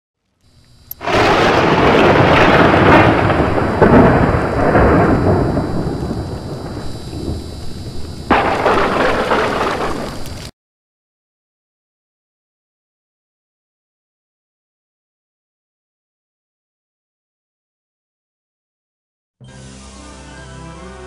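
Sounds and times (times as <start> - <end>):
rain: 0.9 - 10.5
thunder crash rumbling: 1.0 - 10.5.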